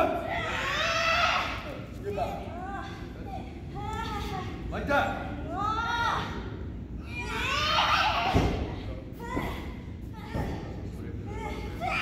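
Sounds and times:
women shouting: 0:05.5 - 0:10.4.

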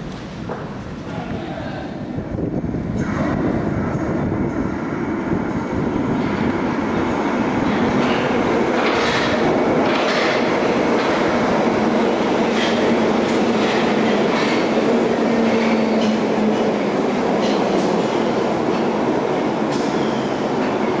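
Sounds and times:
train wheels rumbling on rail: 0:02.0 - 0:21.0.

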